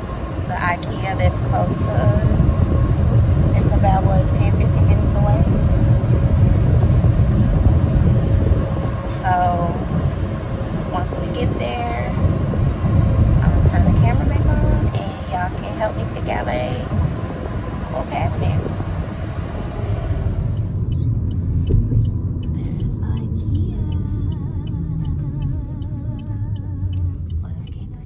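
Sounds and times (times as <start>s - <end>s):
voices: 0.0s - 2.8s, 3.5s - 10.1s, 10.7s - 12.4s, 13.4s - 17.0s, 17.8s - 18.8s, 19.6s - 28.0s
car cabin road and engine rumble: 0.0s - 28.0s.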